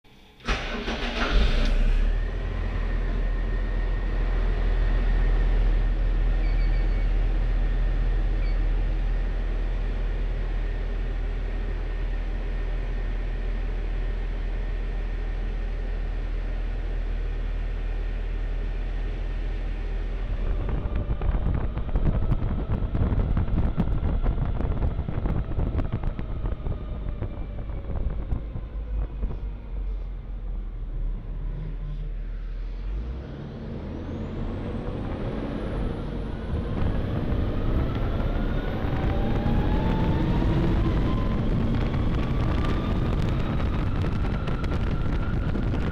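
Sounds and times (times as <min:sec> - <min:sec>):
armored car engine: 0:00.3 - 0:45.9
high rising whine: 0:01.8 - 0:45.9.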